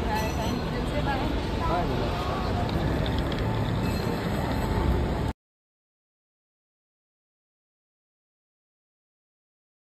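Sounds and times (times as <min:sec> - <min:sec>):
dense rumbling background noise: 0:00.0 - 0:05.3.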